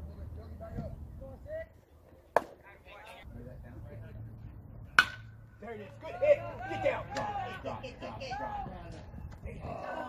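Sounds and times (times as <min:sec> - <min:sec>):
metal bat hitting ball: 0:04.9 - 0:05.4.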